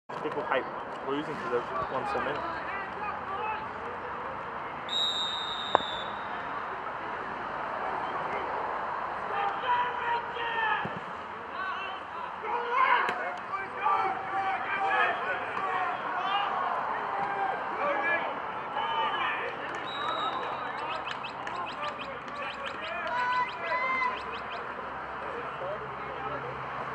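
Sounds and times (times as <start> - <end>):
referee's whistle: 4.9 - 6.4, 19.8 - 24.7
people shouting: 9.3 - 10.9, 11.5 - 24.2.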